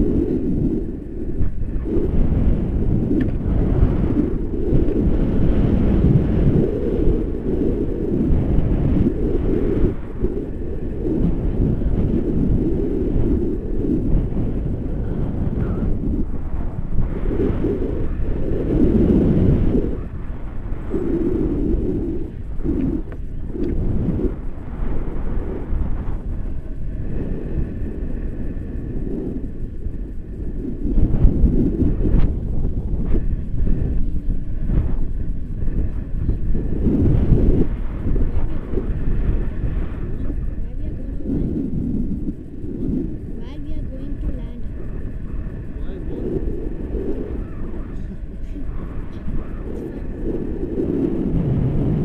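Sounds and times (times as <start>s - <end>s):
wind buffeting microphone: 0.0s - 52.0s.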